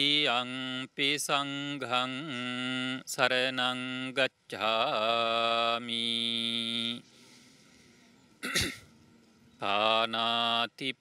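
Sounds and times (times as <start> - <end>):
short cough: 8.4 - 8.9.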